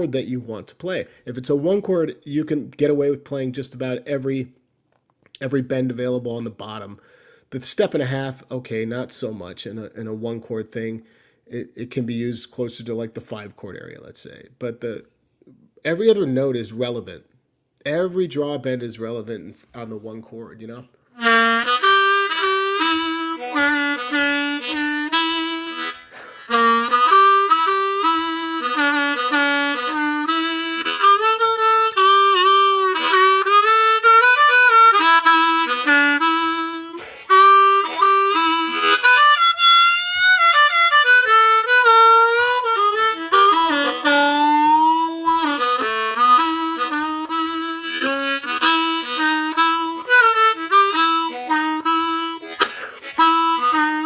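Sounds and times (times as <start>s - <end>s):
blues harmonica with bent notes: 21.1s - 54.0s.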